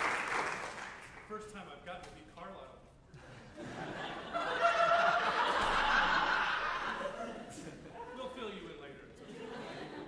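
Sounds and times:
audience laughing: 3.2s - 8.3s, 9.2s - 10.0s.

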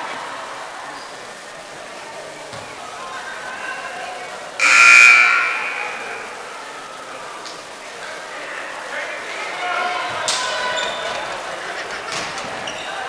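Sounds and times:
crowd chatter: 0.0s - 13.0s
scoreboard buzzer blast: 4.6s - 6.3s.

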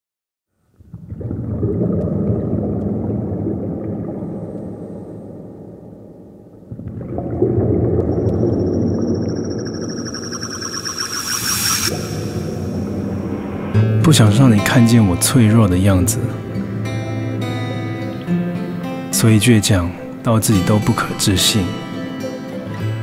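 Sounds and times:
low ambient drone: 8.0s - 19.1s
steady high whine: 8.2s - 15.6s.

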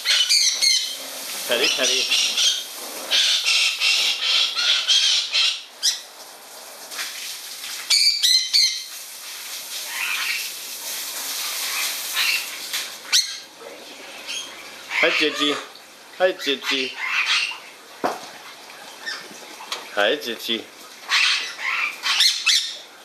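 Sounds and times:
parrot squawk: 0.0s - 6.1s, 7.9s - 8.9s, 9.9s - 10.5s, 11.7s - 13.5s, 14.3s - 15.7s, 16.4s - 17.6s, 21.1s - 22.8s.

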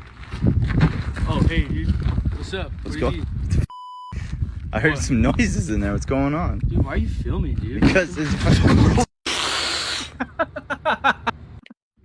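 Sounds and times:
loud hiss: 9.3s - 10.2s
person laughing: 10.0s - 11.4s.

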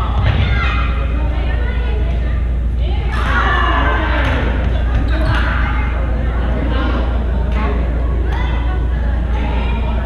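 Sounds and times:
players talking: 0.0s - 10.0s
steady low hum: 0.0s - 10.0s.

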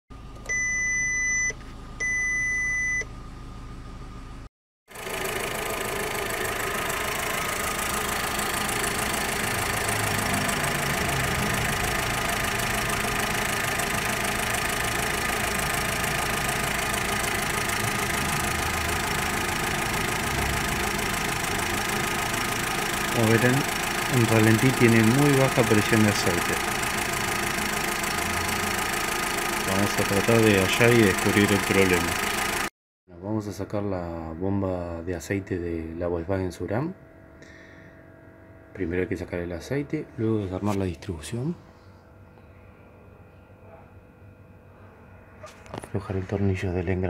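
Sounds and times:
warning beeps: 0.5s - 3.1s
car engine idling: 4.9s - 32.7s.

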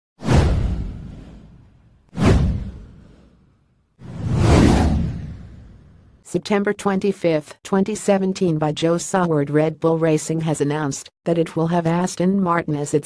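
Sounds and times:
whoosh sound effects: 4.0s - 6.1s
deep rumble: 4.1s - 6.2s.

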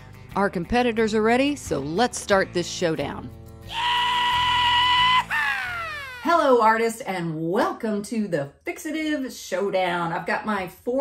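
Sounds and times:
background music: 0.0s - 6.6s
person whooping: 3.7s - 6.3s.

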